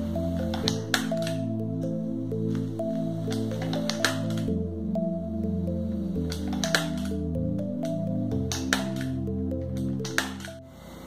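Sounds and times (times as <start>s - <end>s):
calm background music: 0.0s - 11.0s.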